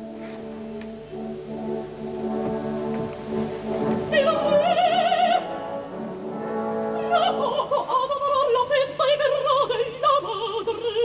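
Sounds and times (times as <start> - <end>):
orchestra playing brass-led chords: 0.0 - 8.8.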